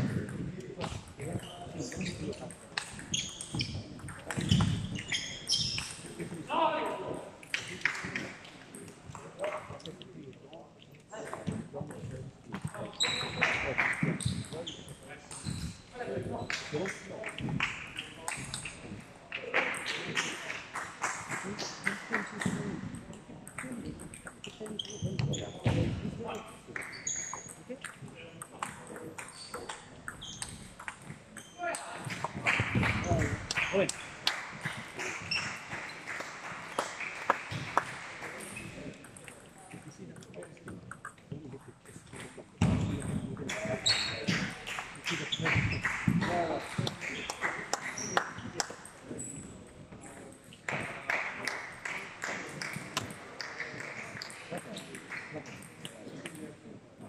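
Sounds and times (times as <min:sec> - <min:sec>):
people talking: 0:00.0 - 0:05.0, 0:05.8 - 0:20.6, 0:21.3 - 0:30.1, 0:30.8 - 0:36.8, 0:37.5 - 0:57.0.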